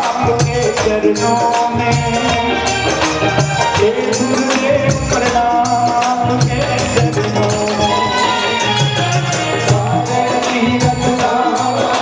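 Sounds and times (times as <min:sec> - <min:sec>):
band accompaniment: 0:00.0 - 0:12.0
jingling percussion: 0:00.0 - 0:12.0
person singing: 0:00.0 - 0:12.0.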